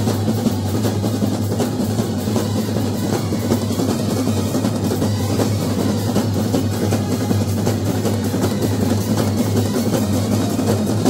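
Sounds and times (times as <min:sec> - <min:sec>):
bass drums: 0:00.0 - 0:11.0
cymbals: 0:00.0 - 0:11.0
snare drums: 0:00.0 - 0:11.0.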